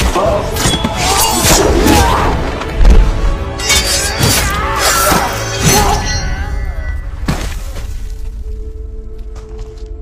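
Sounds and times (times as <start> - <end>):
film score: 0.0 - 10.0.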